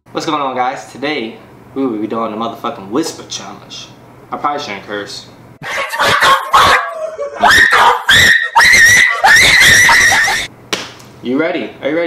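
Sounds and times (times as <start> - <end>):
shrill screaming: 5.6 - 10.5.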